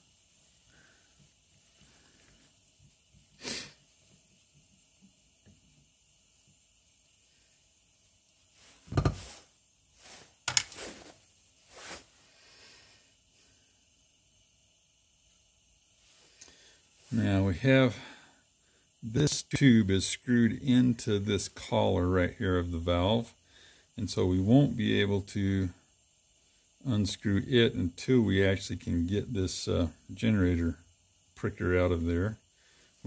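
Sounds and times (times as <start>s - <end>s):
metal part knocking on workbench: 8.9s - 9.3s.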